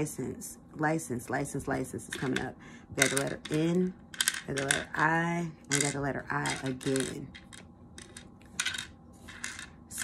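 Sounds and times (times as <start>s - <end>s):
wooden tiles clicking and sliding: 3.0s - 5.0s, 5.7s - 10.0s.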